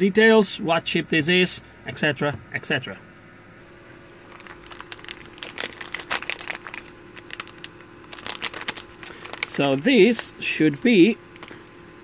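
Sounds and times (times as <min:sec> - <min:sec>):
plastic bag crinkling: 0:04.0 - 0:11.8.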